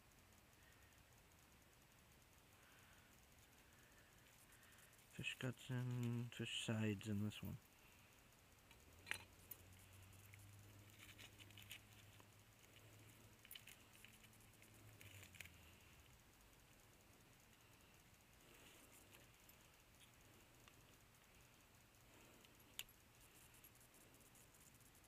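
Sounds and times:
faint low hum: 0:00.0 - 0:25.0
light clicks and handling noises: 0:00.6 - 0:25.0.

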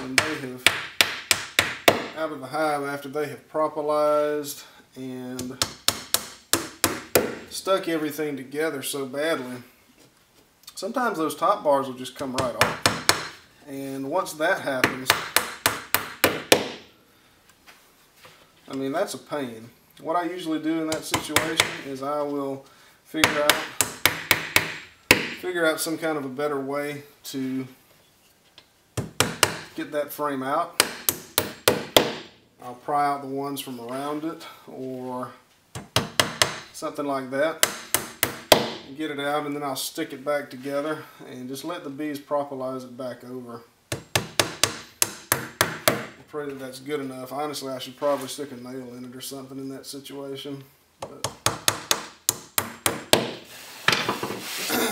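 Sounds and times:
hammer striking nails into wood: 0:00.1 - 0:02.2, 0:05.6 - 0:07.5, 0:12.4 - 0:13.4, 0:14.8 - 0:16.8, 0:20.9 - 0:21.8, 0:23.2 - 0:25.4, 0:29.0 - 0:29.8, 0:30.8 - 0:32.3, 0:35.8 - 0:36.7, 0:37.6 - 0:38.8, 0:43.9 - 0:46.2, 0:51.2 - 0:54.2.

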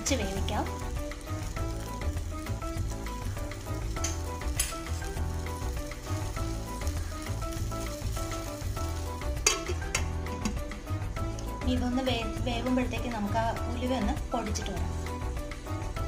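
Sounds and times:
background music: 0:00.0 - 0:16.0
sauce boiling and sizzling: 0:00.0 - 0:16.0.

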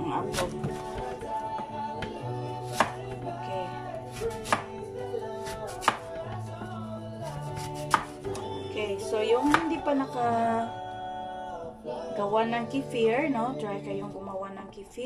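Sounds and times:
soft background music: 0:00.0 - 0:15.0
knife slicing apple: 0:00.2 - 0:01.2, 0:02.0 - 0:03.1, 0:04.1 - 0:04.7, 0:05.4 - 0:06.3, 0:07.2 - 0:08.3, 0:09.4 - 0:09.7.

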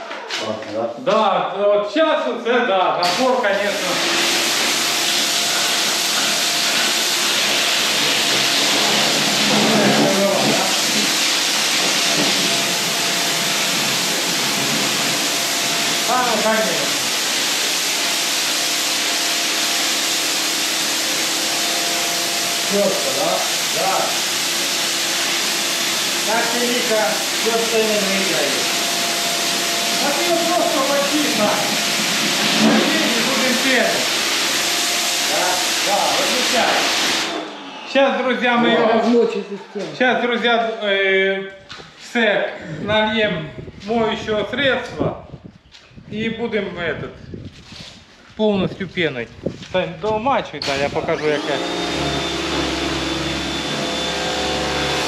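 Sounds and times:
pressure washer water jet hissing: 0:03.0 - 0:38.0, 0:50.5 - 0:55.0.

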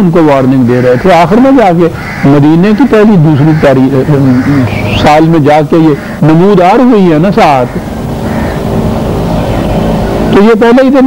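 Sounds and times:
low background drone: 0:00.0 - 0:11.0
faint humming tones: 0:01.3 - 0:10.6.

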